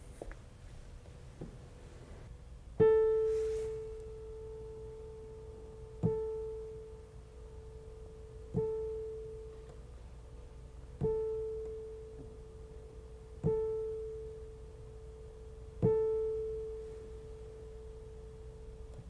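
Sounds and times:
digital piano note ringing: 11.0s - 18.8s.

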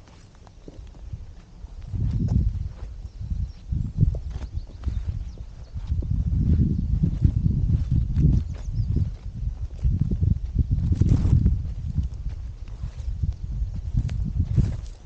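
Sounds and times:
footsteps on gritty dirt path: 0.0s - 15.0s.

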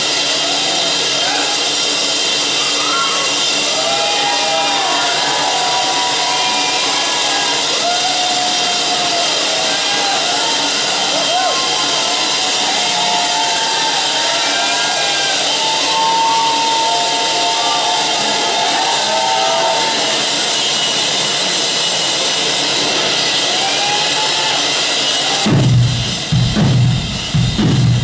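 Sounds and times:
crowd noise: 0.0s - 28.0s
heavy drum kit hits: 25.4s - 28.0s.

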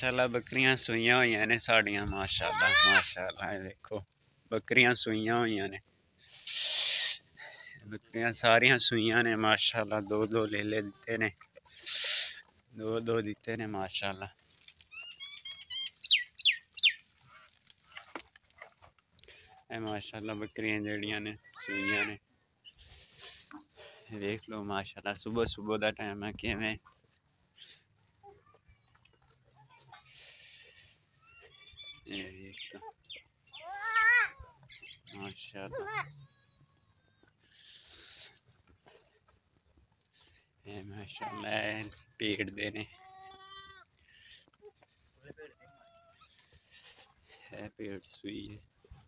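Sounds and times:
leaves rustling: 0.0s - 49.0s
faint high goat call: 42.9s - 46.5s.

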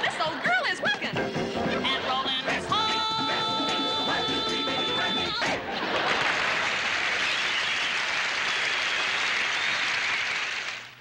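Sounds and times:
audience applauding and cheering: 5.9s - 11.0s.

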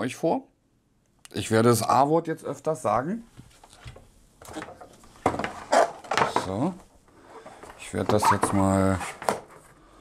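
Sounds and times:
plastic power strip knocking: 4.4s - 6.5s.

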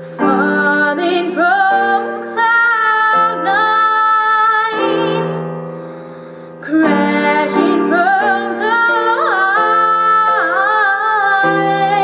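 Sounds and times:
girl singing a pop ballad: 0.0s - 12.0s.

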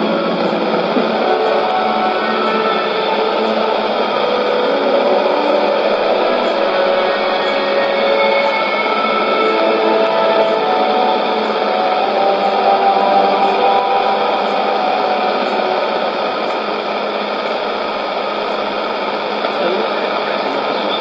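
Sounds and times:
faint radio music: 0.0s - 21.0s
radio static hiss: 0.0s - 21.0s.

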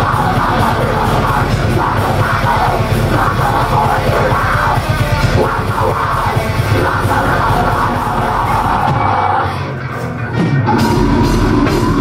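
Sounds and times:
fast dense drumming: 0.0s - 9.3s, 10.5s - 12.0s
harsh yelled vocals: 0.0s - 9.7s, 10.5s - 12.0s
bass guitar: 0.0s - 12.0s
distorted guitars: 0.0s - 12.0s.

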